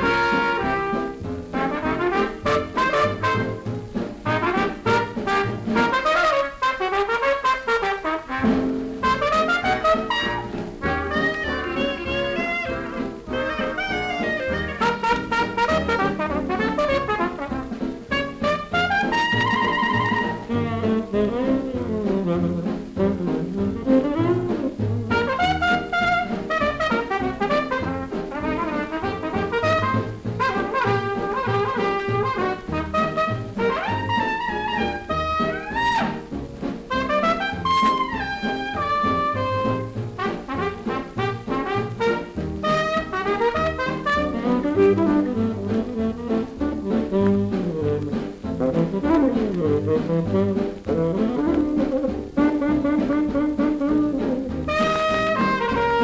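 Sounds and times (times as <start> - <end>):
solo trumpet jazz tune: 0.0 - 56.0.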